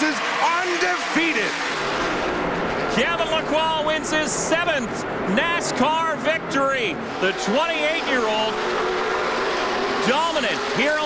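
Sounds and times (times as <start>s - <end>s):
race commentator's excited voice: 0.0s - 1.8s, 2.8s - 11.0s
race cars running: 0.0s - 11.0s.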